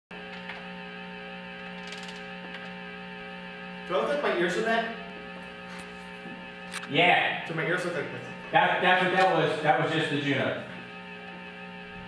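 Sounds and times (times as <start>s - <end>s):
synthesizer low tone hum: 0.1s - 12.0s.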